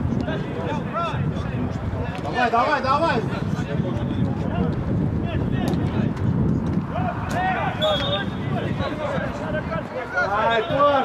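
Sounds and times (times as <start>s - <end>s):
footballers shouting: 6.8s - 11.0s.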